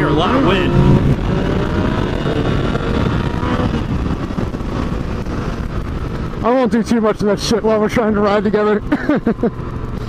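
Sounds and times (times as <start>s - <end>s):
wind roaring over microphone: 0.0s - 8.9s
motorcycle engine: 0.0s - 10.0s.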